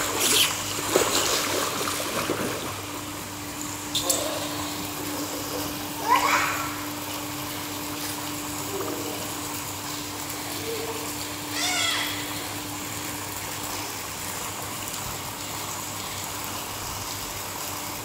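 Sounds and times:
water jets splashing into pool: 0.0s - 18.0s
child calling: 6.0s - 6.9s, 10.6s - 12.4s.

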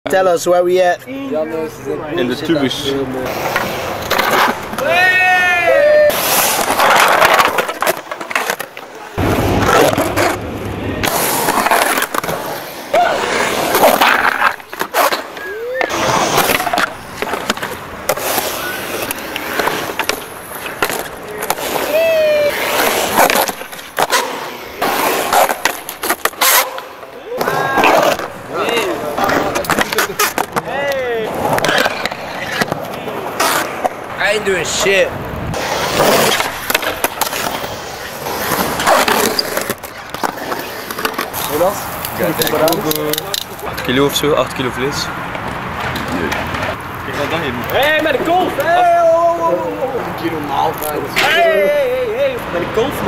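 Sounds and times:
skateboard wheels rolling on concrete: 0.1s - 53.0s
skateboard clacking on concrete: 3.4s - 44.0s, 45.2s - 50.0s.

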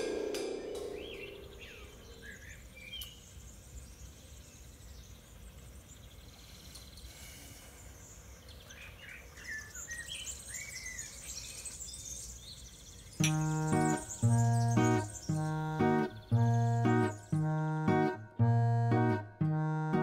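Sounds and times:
small birds chirping: 0.0s - 20.0s.

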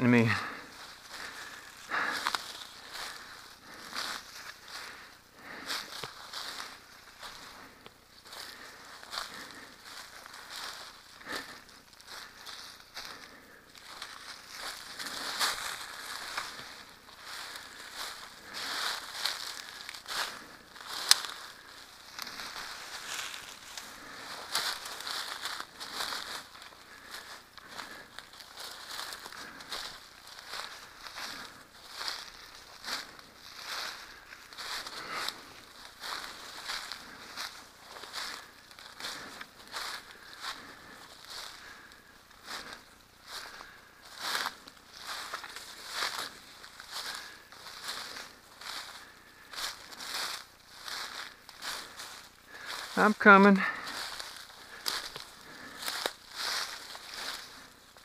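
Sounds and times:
dry twigs crackling: 0.0s - 58.0s
footsteps through undergrowth: 0.0s - 58.0s
leaves rustling: 0.0s - 58.0s.

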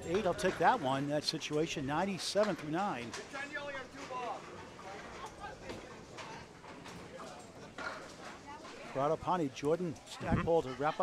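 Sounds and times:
bowling pins and balls clattering: 0.0s - 8.4s.

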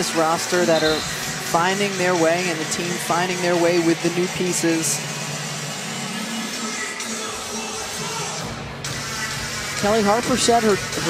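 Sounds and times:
basketball crowd noise: 0.0s - 11.0s
music over arena sound system: 0.0s - 11.0s.

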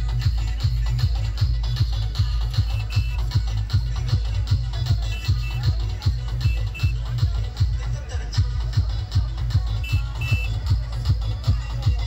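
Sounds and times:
loud dance music: 0.0s - 12.0s
short high beeps: 9.8s - 10.6s.

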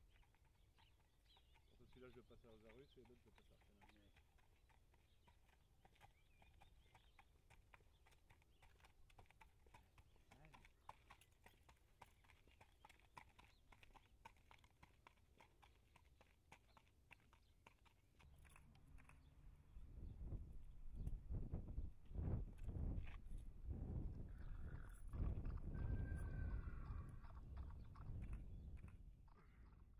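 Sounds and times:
hoofbeats on paved road: 0.0s - 29.9s.

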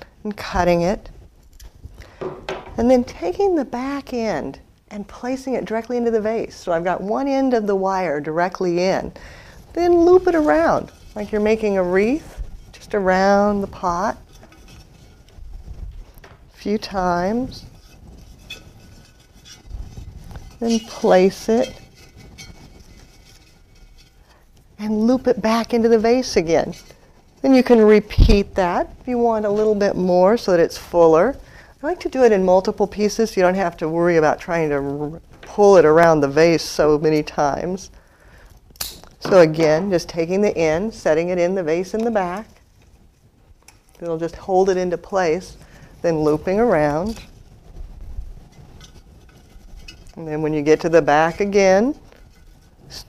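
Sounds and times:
wire ticks and scrapes: 0.0s - 37.8s, 38.4s - 53.0s
faint handling noise: 9.6s - 30.0s, 38.5s - 53.0s.

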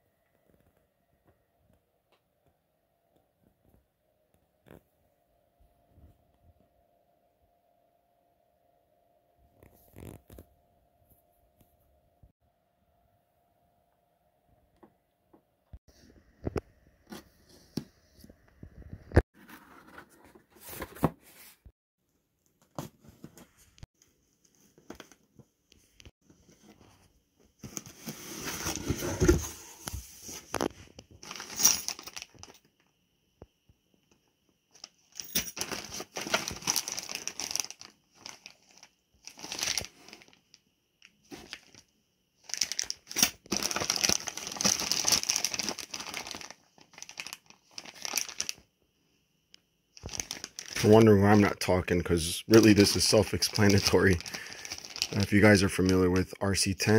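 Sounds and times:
plastic bags crinkling: 35.5s - 40.4s, 42.4s - 48.6s, 50.0s - 51.5s, 52.5s - 56.0s.

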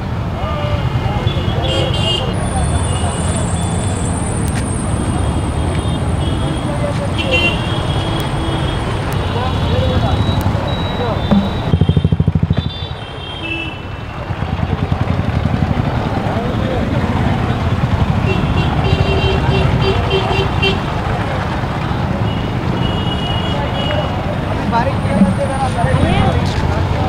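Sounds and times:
hubbub of voices: 0.0s - 27.0s
motorcycle engines running: 0.0s - 27.0s
passing traffic: 0.0s - 27.0s.

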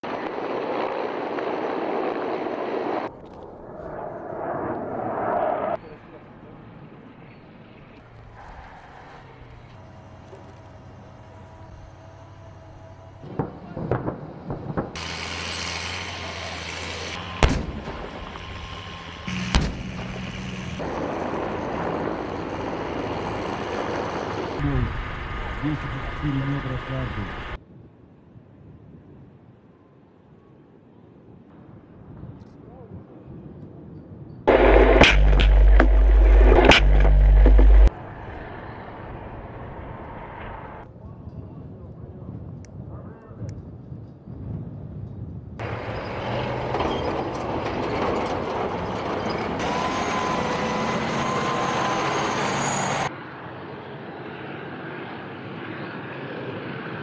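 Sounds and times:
vehicle engine noise: 0.0s - 27.6s, 34.5s - 41.0s, 45.6s - 57.0s
weapons firing shots: 17.4s - 18.2s, 19.3s - 20.2s.

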